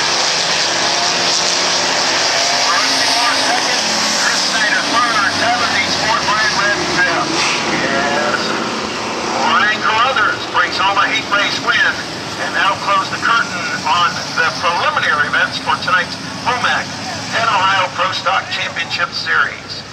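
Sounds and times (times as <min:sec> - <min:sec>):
race car engines droning: 0:00.0 - 0:19.9
man talking: 0:02.4 - 0:19.9.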